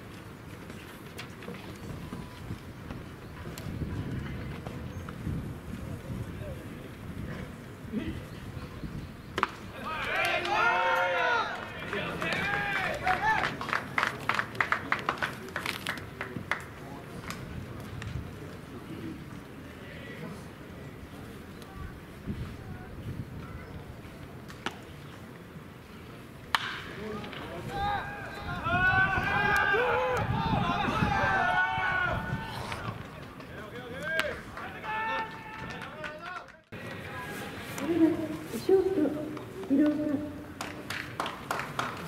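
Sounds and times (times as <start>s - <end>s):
people shouting across a field: 9.7s - 13.6s, 27.6s - 33.0s
bat hitting baseball crack: 26.5s - 27.5s
sharp claps or clicks: 40.6s - 42.0s.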